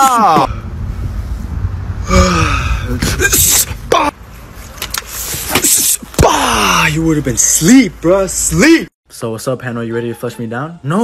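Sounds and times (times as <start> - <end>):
breathy exhales and sigh: 2.0 - 3.0.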